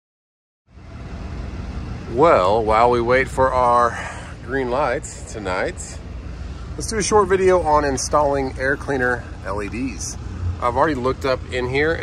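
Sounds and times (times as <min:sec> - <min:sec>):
low vehicle rumble: 0:00.7 - 0:12.0.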